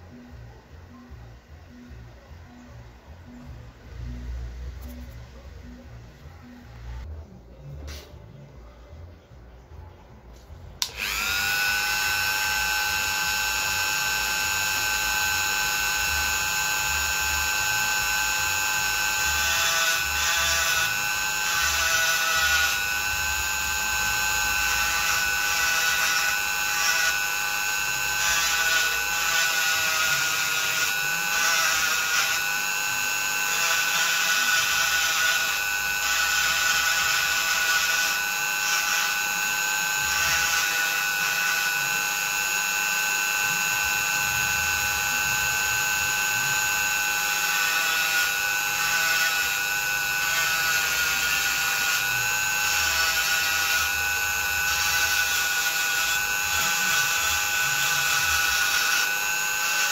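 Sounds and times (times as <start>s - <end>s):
bit grinding coconut shell: 10.8s - 59.9s
rotary tool high whine: 10.8s - 59.9s.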